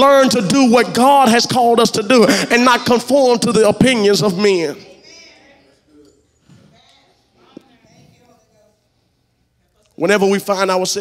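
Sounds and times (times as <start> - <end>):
preacher's loud voice echoing: 0.0 - 5.0, 10.0 - 11.0.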